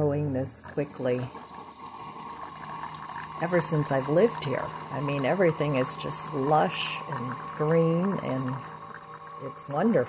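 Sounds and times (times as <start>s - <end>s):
faint steady hum: 0.0s - 10.0s
coffee trickling into mug: 0.7s - 10.0s.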